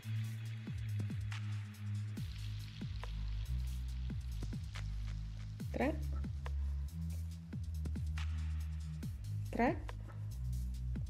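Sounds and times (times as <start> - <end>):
deep bass notes: 0.0 - 11.0
electronic music: 0.0 - 11.0
thumping beat dropping in pitch: 0.0 - 11.0.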